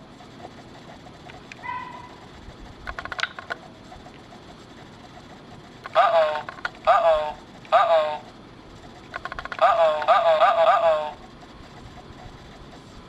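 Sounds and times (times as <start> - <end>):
toy speaker voice clip: 5.9 - 8.3, 9.2 - 11.2.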